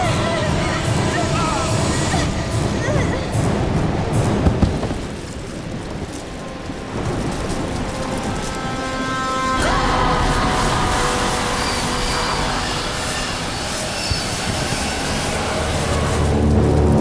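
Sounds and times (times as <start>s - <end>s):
dense low rumble: 0.0s - 17.0s.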